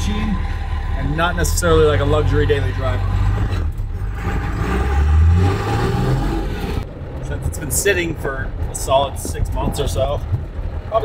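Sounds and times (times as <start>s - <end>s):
diesel engine revving: 0.0s - 11.0s.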